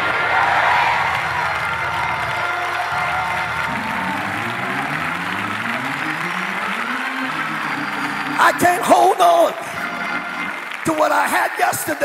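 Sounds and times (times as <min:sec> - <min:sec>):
church music: 0:00.0 - 0:12.0
congregation clapping and cheering: 0:00.0 - 0:12.0.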